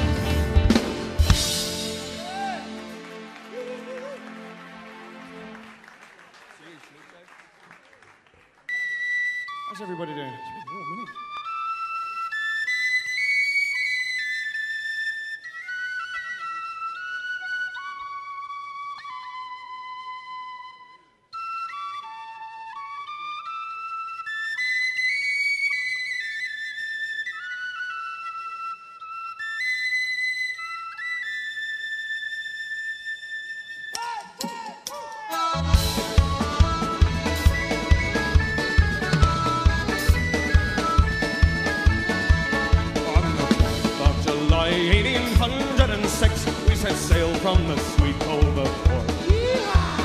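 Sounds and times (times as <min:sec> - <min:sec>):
band with drum kit: 0:00.0 - 0:04.1, 0:34.2 - 0:50.0
tin whistle melody: 0:08.7 - 0:34.6, 0:35.4 - 0:50.0.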